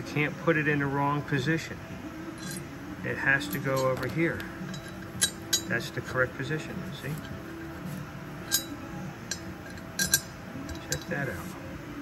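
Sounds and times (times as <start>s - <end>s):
metal bolt clinking: 2.4s - 2.7s, 3.4s - 11.4s.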